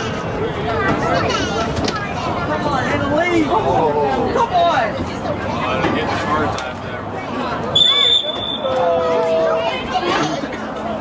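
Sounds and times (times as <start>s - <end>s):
spectators talking and calling out: 0.0s - 11.0s
referee whistle blast: 7.7s - 8.7s.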